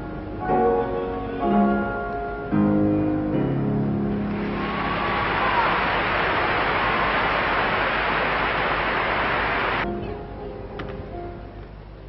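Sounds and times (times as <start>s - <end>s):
piano accompaniment: 0.0s - 7.6s
audience applause: 4.3s - 9.8s.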